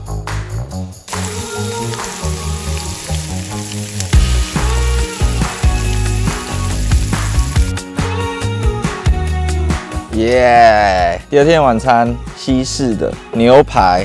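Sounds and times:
background music: 0.0s - 14.0s
steak sizzling in a frying pan: 1.1s - 7.8s.

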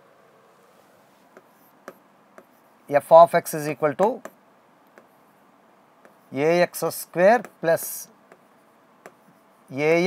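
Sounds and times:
pen writing on a board: 1.2s - 2.7s, 4.1s - 5.3s, 6.0s - 6.3s, 7.4s - 7.7s, 8.3s - 9.6s
man speaking: 2.9s - 4.3s, 6.3s - 8.1s, 9.7s - 10.0s.

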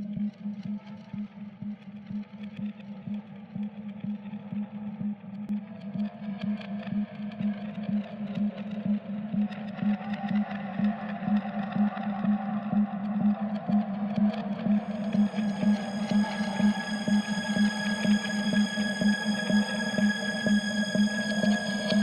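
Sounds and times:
pulsing low techno tone: 0.0s - 22.0s
hazy higher synth layer: 9.0s - 22.0s.

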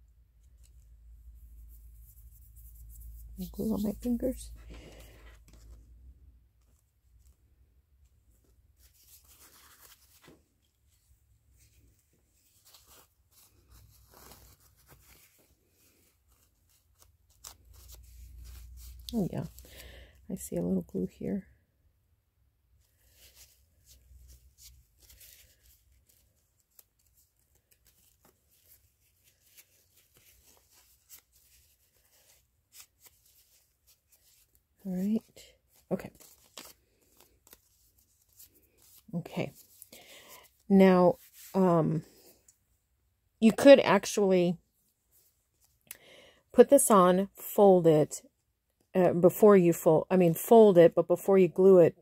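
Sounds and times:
paper card rustling: 0.4s - 7.5s, 8.3s - 20.0s, 22.9s - 40.6s.

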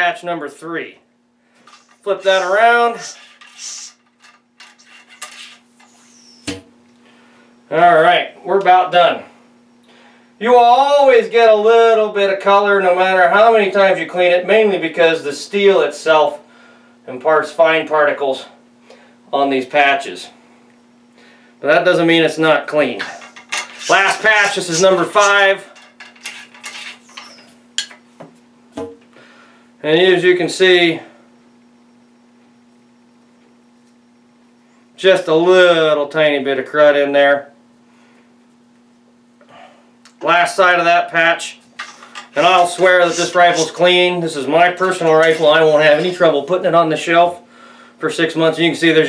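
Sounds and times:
faint steady hum: 0.0s - 49.0s
ramrod scraping in rifle barrel: 1.6s - 6.4s, 23.0s - 27.9s, 41.8s - 44.0s.

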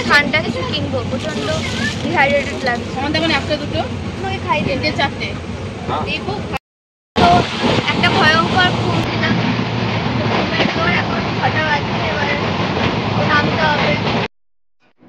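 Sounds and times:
passenger train running: 0.0s - 6.6s, 7.2s - 14.3s
woman talking: 7.2s - 9.5s.

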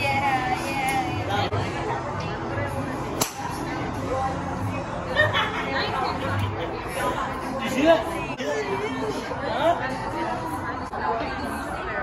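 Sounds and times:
voices chattering: 0.0s - 12.0s
golf club striking ball: 3.2s - 3.5s.

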